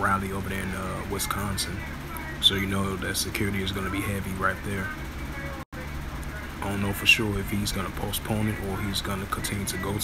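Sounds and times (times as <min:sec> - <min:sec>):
man speaking: 0:00.0 - 0:05.0, 0:06.5 - 0:10.0
low background hum: 0:00.0 - 0:10.0.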